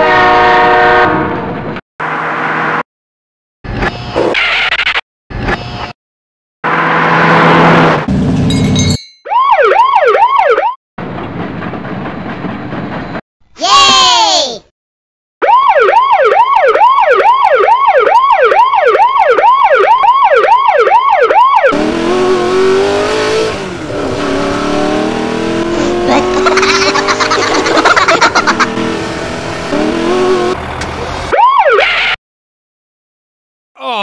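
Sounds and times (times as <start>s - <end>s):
vehicle engine: 6.6s - 9.0s, 21.7s - 31.3s
police siren: 9.3s - 10.8s, 15.4s - 23.2s, 31.3s - 32.2s.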